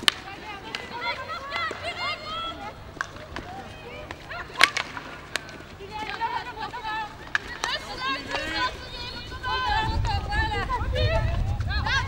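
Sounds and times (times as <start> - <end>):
hockey stick striking ball: 0.0 - 6.4, 7.2 - 9.0
players' high-pitched shouts: 0.6 - 2.8.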